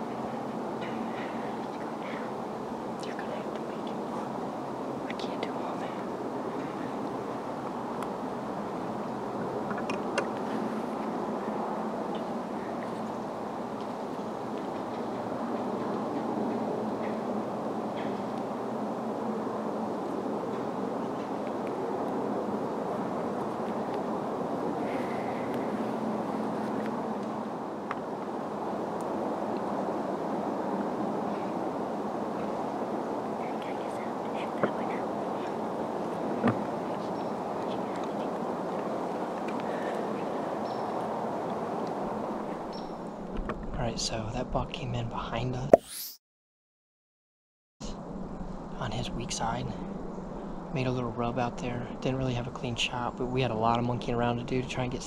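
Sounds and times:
woodland background hiss: 0.0 - 45.5, 47.9 - 55.0
rustles: 30.8 - 43.7.

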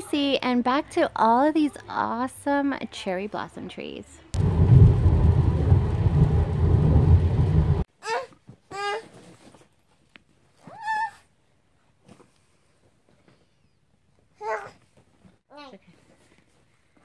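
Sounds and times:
road rumble inside car: 4.4 - 7.9
baby babbling: 8.0 - 9.1.

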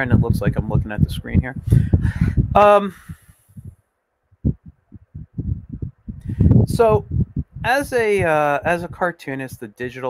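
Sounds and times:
soft low thumps: 0.0 - 9.7.

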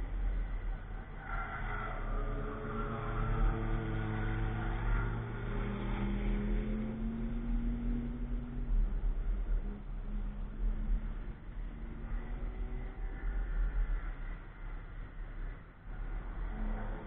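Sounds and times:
constant low rumble: 0.0 - 17.0
race car engine passing: 1.4 - 8.6.

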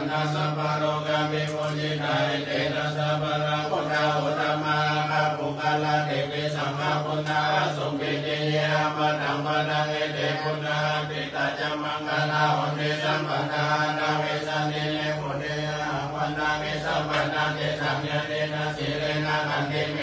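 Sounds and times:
voices chanting in monotone: 0.0 - 20.0.

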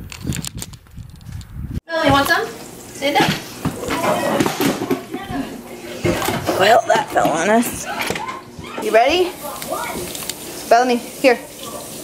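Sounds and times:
people talking: 1.9 - 12.0.

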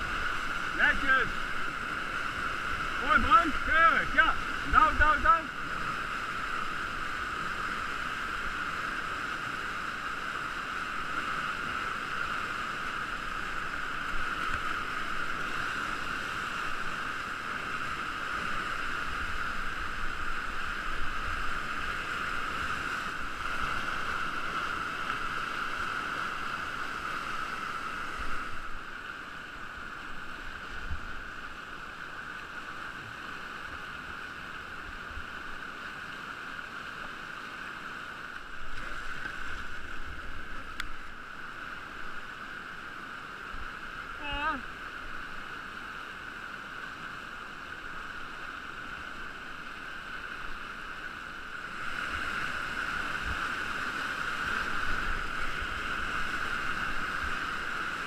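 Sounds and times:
whitewater rushing: 0.0 - 58.0.

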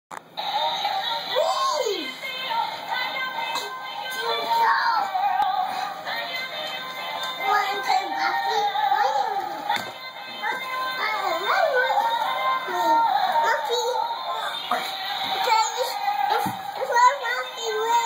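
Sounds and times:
synthesized singing voice: 0.4 - 18.0.

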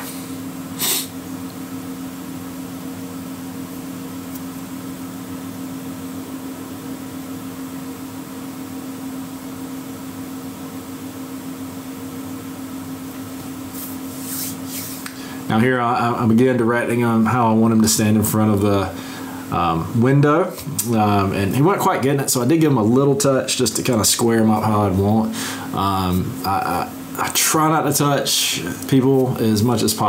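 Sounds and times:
low mechanical hum: 0.0 - 30.0.

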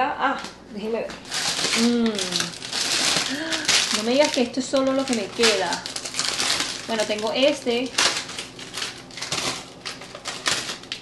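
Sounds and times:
packages being moved in fridge: 0.8 - 11.0.

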